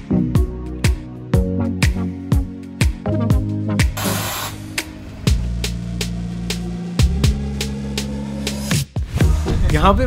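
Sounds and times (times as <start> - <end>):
background music with drum beat: 0.0 - 10.0.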